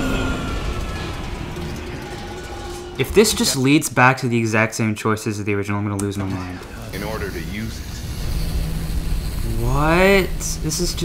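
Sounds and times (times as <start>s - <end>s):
steady high tone: 0.0s - 4.0s, 6.9s - 11.0s
spaceship landing rumble: 6.4s - 11.0s.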